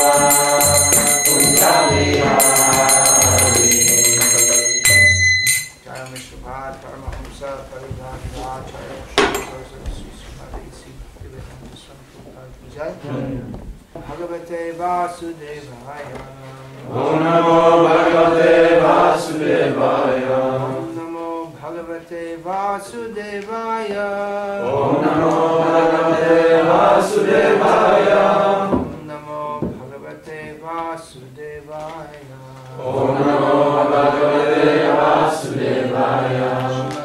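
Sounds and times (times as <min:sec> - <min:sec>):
group chanting in unison: 0:00.0 - 0:03.8, 0:13.0 - 0:13.6, 0:16.8 - 0:21.1, 0:24.5 - 0:29.7, 0:32.7 - 0:37.0.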